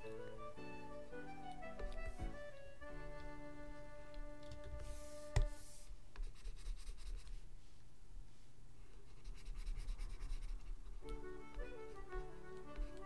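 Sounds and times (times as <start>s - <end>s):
soft instrumental music: 0.0s - 5.8s, 11.0s - 13.0s
pen tap: 1.8s - 2.4s, 4.1s - 5.5s, 11.0s - 13.0s
stylus scratching on tablet: 4.6s - 7.5s, 8.9s - 13.0s.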